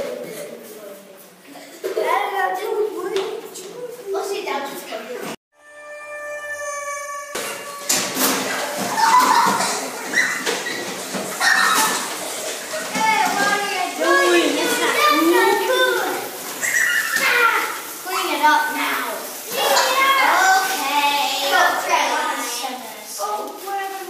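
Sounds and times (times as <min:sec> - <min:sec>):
young children talking and laughing: 0:00.0 - 0:05.4, 0:07.4 - 0:24.0.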